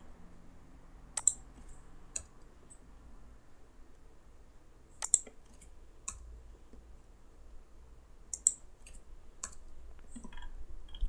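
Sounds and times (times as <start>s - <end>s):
keyboard and mouse clicks: 1.2s - 2.8s, 5.0s - 6.3s, 8.3s - 11.0s.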